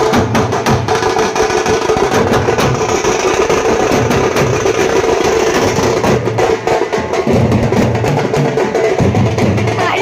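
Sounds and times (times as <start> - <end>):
passing traffic: 0.0 - 10.0
street band drumming: 0.0 - 10.0.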